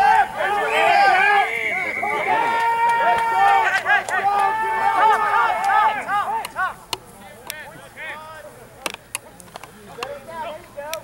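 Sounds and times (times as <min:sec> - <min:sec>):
players shouting calls: 0:00.0 - 0:11.0
sharp clicks: 0:08.8 - 0:10.2.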